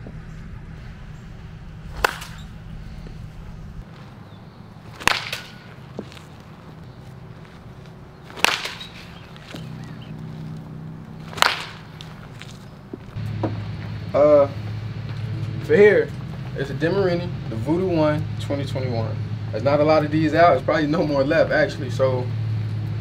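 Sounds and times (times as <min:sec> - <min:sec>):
baseball bat hitting ball: 0:01.8 - 0:10.6, 0:11.2 - 0:13.6.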